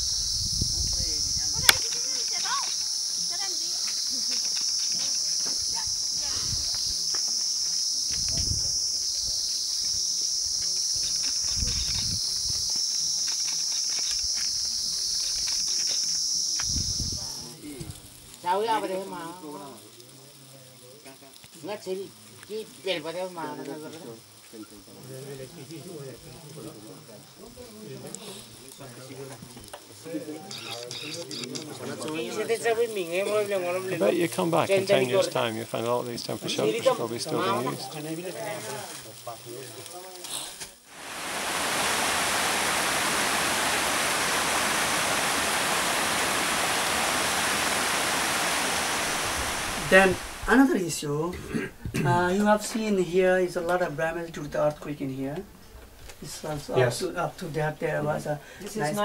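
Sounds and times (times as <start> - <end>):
high-pitched insect chorus: 0.0 - 51.1
people conversing: 0.6 - 7.1, 16.6 - 40.9, 49.7 - 59.0.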